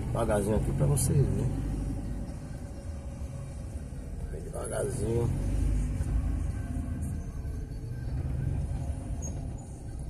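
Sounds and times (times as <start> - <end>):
vehicle creeping along slowly: 0.0 - 10.0.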